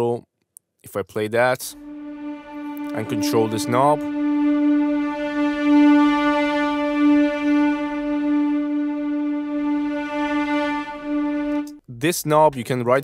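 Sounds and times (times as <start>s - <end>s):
held sampled instrument note: 1.7s - 11.8s.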